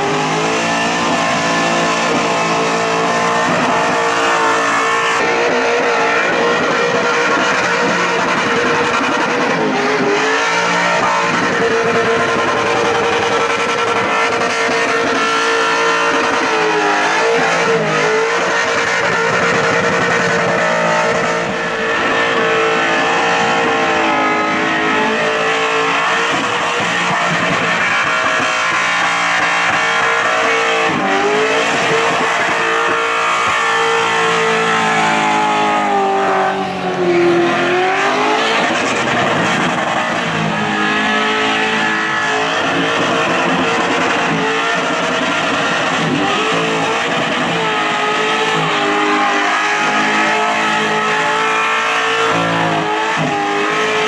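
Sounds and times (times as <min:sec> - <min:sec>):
car engine at high revs: 0:00.0 - 0:54.0
tyres spinning and squealing: 0:00.0 - 0:54.0.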